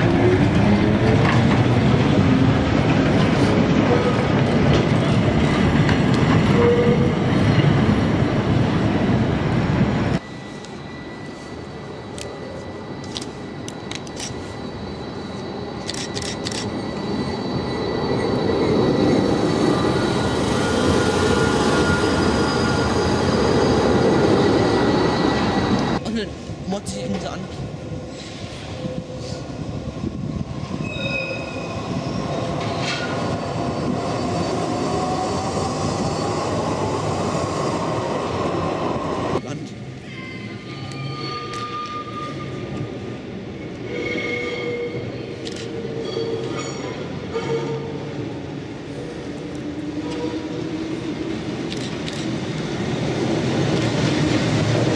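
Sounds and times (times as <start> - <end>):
tram wheel-on-rail rumble: 0.0 - 54.9
tram motor whine: 8.0 - 26.0.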